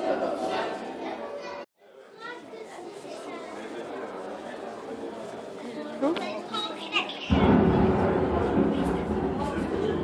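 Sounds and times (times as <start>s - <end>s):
loud low thunder rumble: 7.3s - 10.0s.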